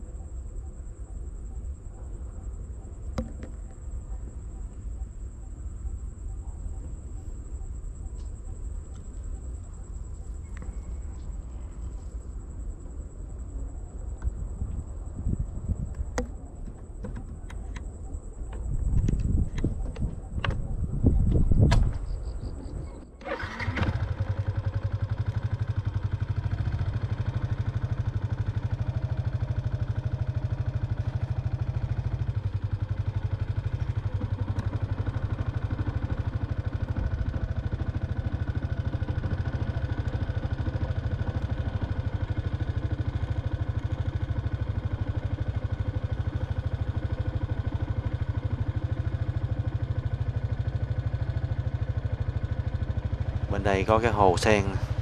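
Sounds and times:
motorbike engine running: 23.3 - 55.0.

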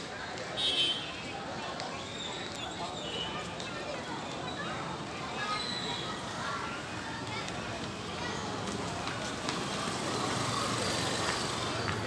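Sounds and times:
traffic hum: 0.0 - 12.0.

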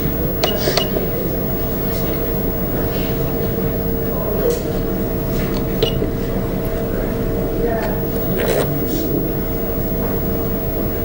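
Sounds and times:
steady two-tone hum: 0.0 - 11.0.

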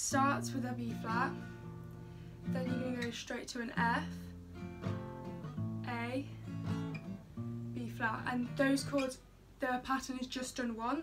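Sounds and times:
acoustic guitar strumming chord: 3.8 - 5.8.

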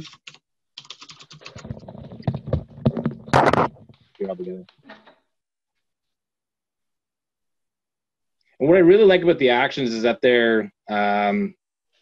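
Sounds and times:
typing on computer keyboard: 0.0 - 2.0.

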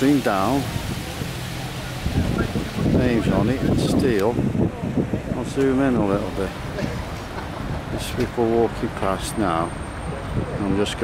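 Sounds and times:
water running down fountain wall: 0.0 - 11.0
wind buffeting on microphone: 0.6 - 9.1, 9.8 - 11.0.

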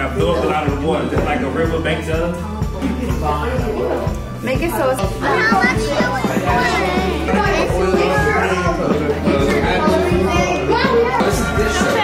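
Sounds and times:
music with steady bass beat: 0.0 - 12.0
children chattering: 3.2 - 12.0.

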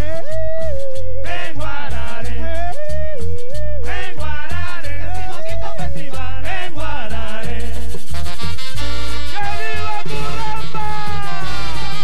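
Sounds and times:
large band playing live: 8.1 - 12.0.

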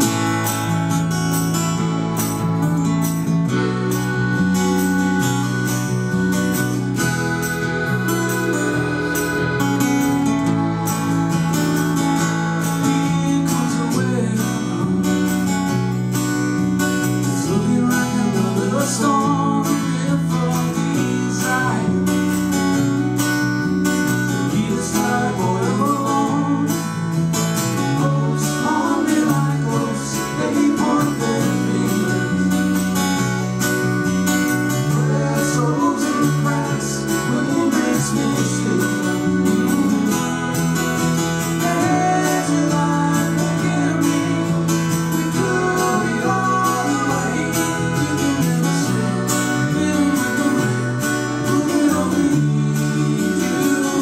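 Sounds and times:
accordion holding chords: 0.0 - 54.0
acoustic guitar strumming: 0.0 - 54.0
person singing: 6.4 - 11.7, 24.4 - 26.8, 27.8 - 32.7, 34.8 - 40.2, 41.4 - 54.0.

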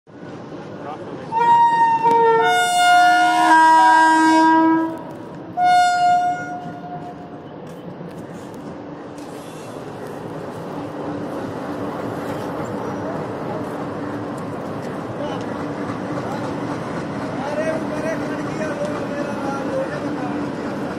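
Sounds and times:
train rumbling on tracks: 0.1 - 20.9
electric train horn: 1.3 - 7.2.

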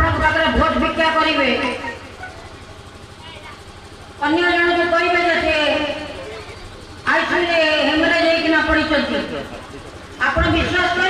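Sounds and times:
vehicle engine running low: 0.0 - 11.0
faint voices: 1.7 - 11.0.

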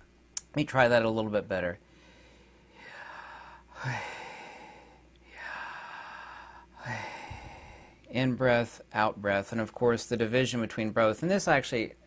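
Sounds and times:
man breathing in: 1.8 - 8.1
man breathing out: 1.9 - 8.1.

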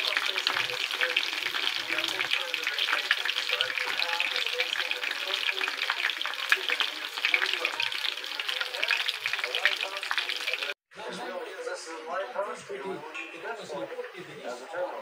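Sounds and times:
tempura frying in hot oil: 0.0 - 10.8.

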